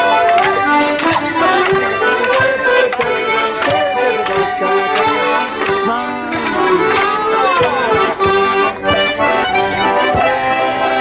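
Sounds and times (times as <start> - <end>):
accordions playing a dance tune: 0.0 - 11.0.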